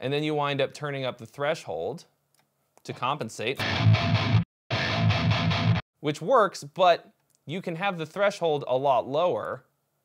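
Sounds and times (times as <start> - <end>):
distorted electric guitar chugging: 3.6 - 5.8.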